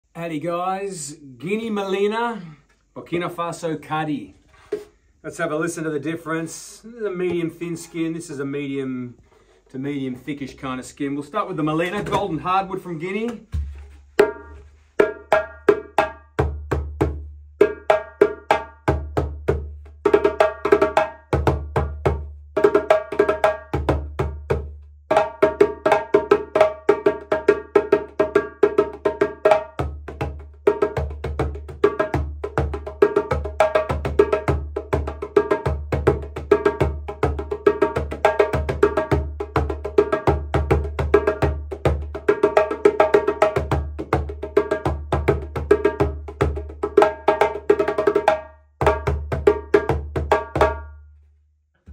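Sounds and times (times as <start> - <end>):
djembe drum played by hand: 11.8 - 12.3, 13.4 - 51.0.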